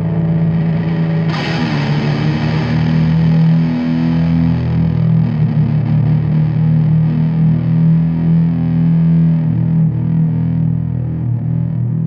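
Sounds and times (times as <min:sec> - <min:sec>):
bass guitar: 0:00.0 - 0:12.0
distorted electric guitar chord: 0:00.0 - 0:12.0.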